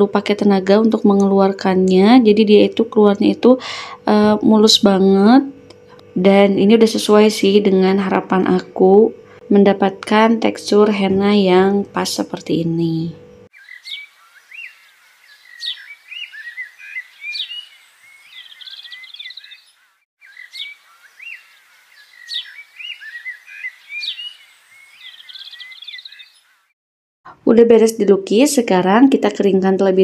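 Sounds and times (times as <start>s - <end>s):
birds chirping and twittering: 13.1s - 26.8s.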